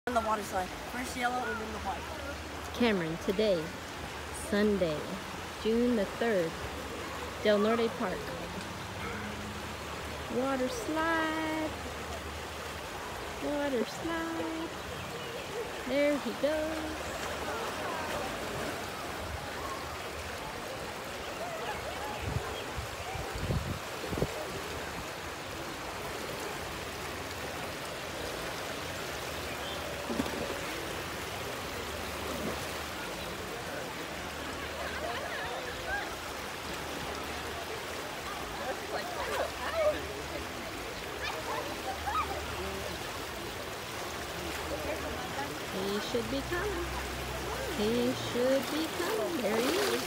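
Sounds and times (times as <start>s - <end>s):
faint voices: 0.1s - 50.0s
water rushing down slides: 6.6s - 50.0s.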